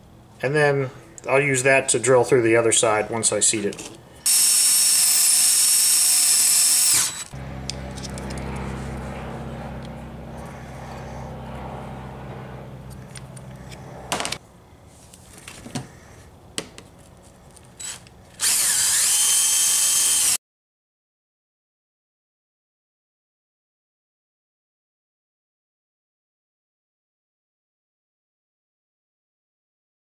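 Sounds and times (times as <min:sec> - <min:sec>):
cordless drill whining: 0:04.2 - 0:07.4, 0:17.8 - 0:20.4.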